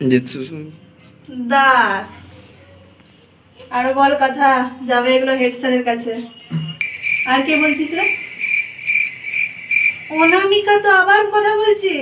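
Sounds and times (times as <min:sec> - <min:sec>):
woman speaking: 0:03.6 - 0:06.4, 0:07.2 - 0:08.3, 0:10.1 - 0:12.0
cricket chirping: 0:06.8 - 0:10.7.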